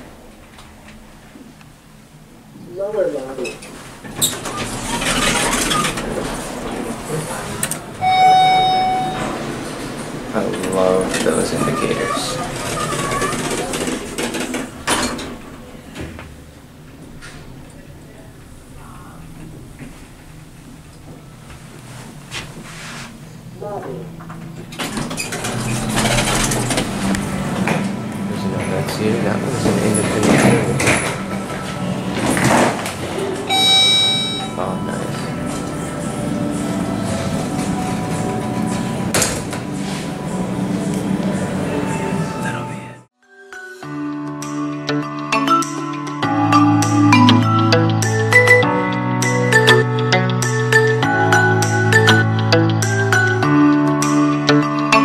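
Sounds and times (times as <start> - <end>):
elevator doors clunking closed: 3.4 - 22.6, 23.4 - 43.1
elevator doors sliding shut: 3.4 - 43.1.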